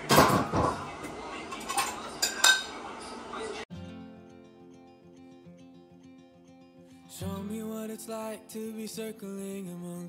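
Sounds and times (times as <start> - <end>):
dishes and cutlery clattering: 0.0 - 3.1.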